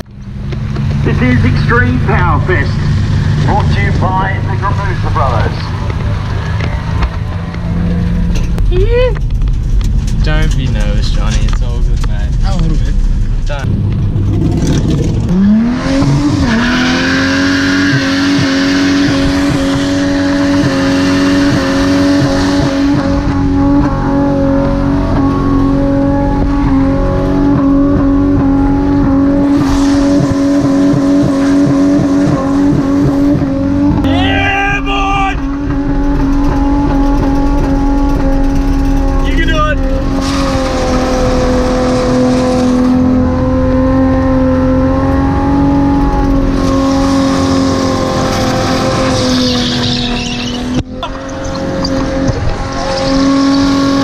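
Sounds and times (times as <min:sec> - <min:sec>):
car engine at high revs: 0:00.0 - 0:54.0
tyre squealing: 0:29.0 - 0:43.0, 0:45.1 - 0:54.0.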